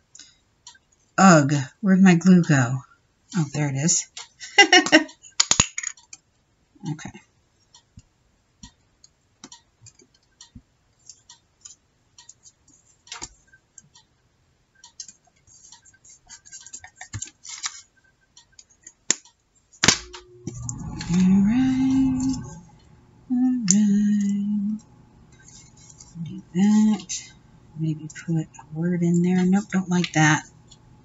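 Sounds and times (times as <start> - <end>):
woman humming: 20.2 - 25.0, 26.1 - 30.1.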